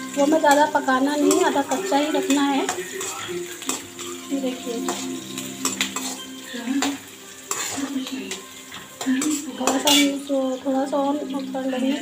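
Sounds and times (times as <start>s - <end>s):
metal spatula scraping pan: 0.0s - 10.4s
onions sizzling in hot oil: 0.0s - 12.0s.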